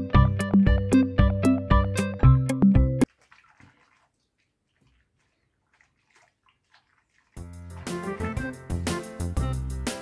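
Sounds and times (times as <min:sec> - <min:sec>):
water splashing in a sink: 0:03.0 - 0:08.8.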